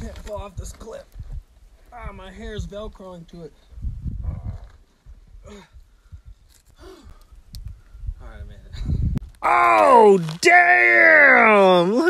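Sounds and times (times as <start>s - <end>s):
man gasping and grunting: 5.4s - 5.9s, 6.8s - 7.2s.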